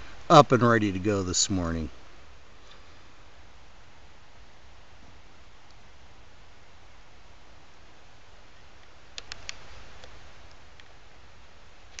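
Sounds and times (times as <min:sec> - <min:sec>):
faint background hiss: 0:00.0 - 0:12.0
faint ticks: 0:08.8 - 0:11.0
sharp clicks: 0:09.2 - 0:10.2.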